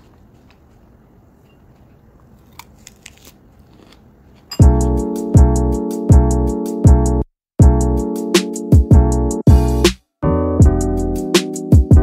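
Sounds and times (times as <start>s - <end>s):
crunching lettuce bites: 2.2s - 4.5s
music with heavy bass beat: 4.6s - 10.0s, 10.6s - 12.0s.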